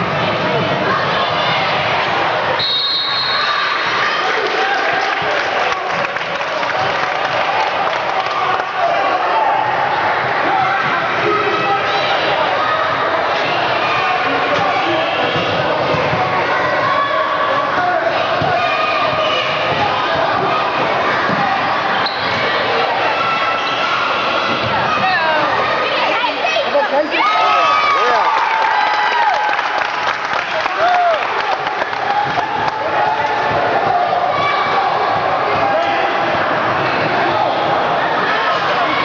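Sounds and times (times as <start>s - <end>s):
spectators chattering and calling: 0.0s - 39.0s.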